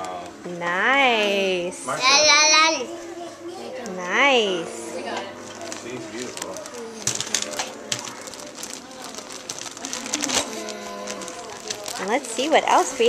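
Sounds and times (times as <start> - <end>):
plastic bag crinkling: 5.4 - 13.0.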